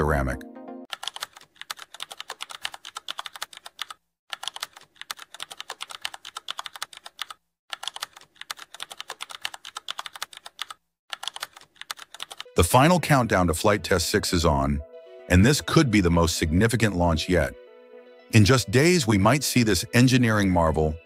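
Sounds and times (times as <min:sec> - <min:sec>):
keyboard typing clicks: 0:00.9 - 0:12.5.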